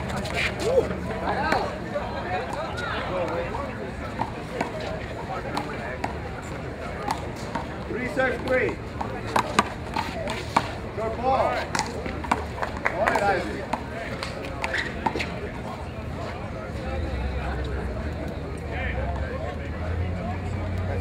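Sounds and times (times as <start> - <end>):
chatter of spectators: 0.0 - 21.0.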